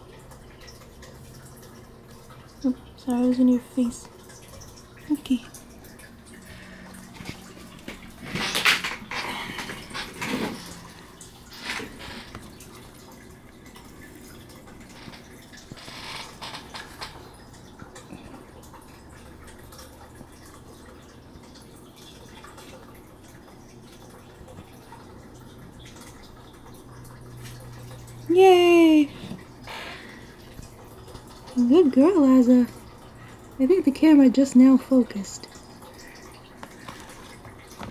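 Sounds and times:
faint background hum: 0.0 - 37.9.

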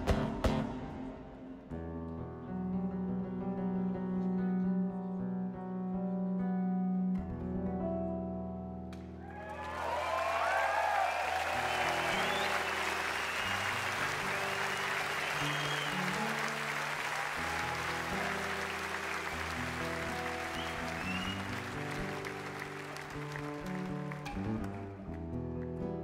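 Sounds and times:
crowd applauding and cheering: 9.2 - 26.0
whistles: 9.4 - 17.4, 20.2 - 22.3.

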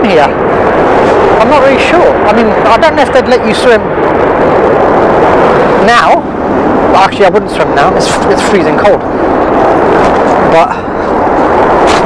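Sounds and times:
subway train rumble: 0.0 - 12.0.

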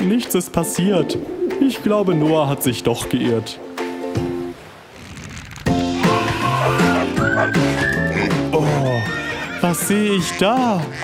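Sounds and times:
background music: 0.0 - 11.0
horse whinny: 5.7 - 9.6.

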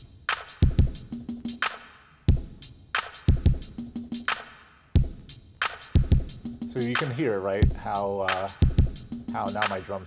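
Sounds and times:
reverberant drum-machine loop: 0.0 - 10.0.

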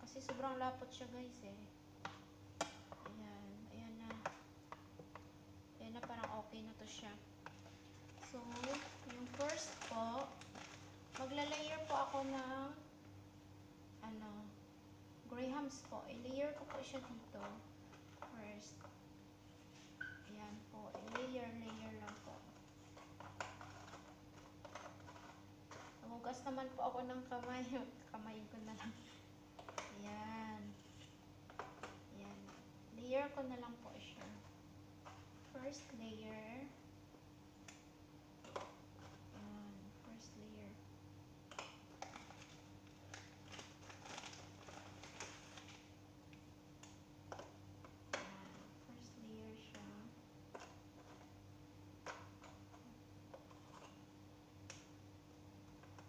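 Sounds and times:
low steady hum: 0.0 - 56.0
crackers rustling in plastic container: 7.5 - 12.5, 21.0 - 26.1, 41.5 - 45.9, 50.5 - 51.3.

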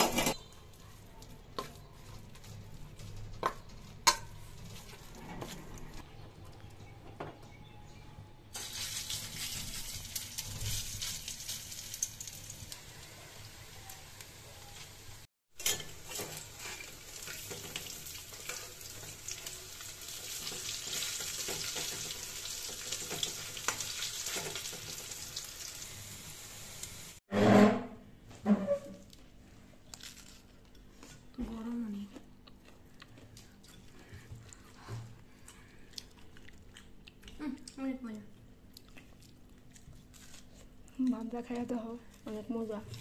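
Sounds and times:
fritters sizzling in hot oil: 8.6 - 27.2
metal spatula scraping and clinking: 15.6 - 18.8
metal spoon stirring in steel bowl: 15.6 - 19.5.

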